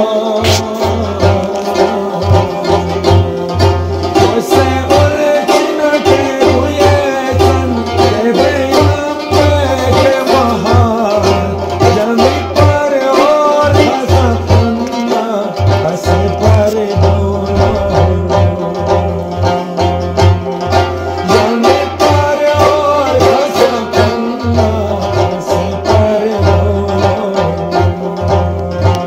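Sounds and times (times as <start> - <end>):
plucked rubab: 0.0 - 29.0.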